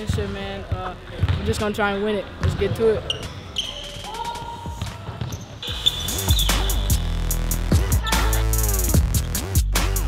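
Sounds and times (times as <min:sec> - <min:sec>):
sneakers squeaking: 0:00.0 - 0:07.2.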